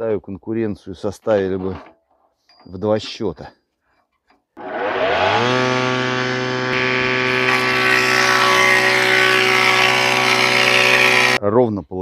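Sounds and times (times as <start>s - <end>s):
cutter milling a board: 4.6s - 11.4s
electric motor whining and humming: 4.6s - 11.4s.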